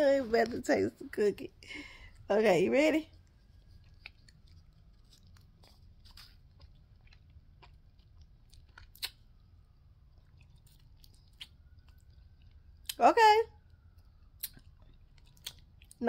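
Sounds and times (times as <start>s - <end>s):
chewing a crunchy cookie: 1.6s - 16.0s.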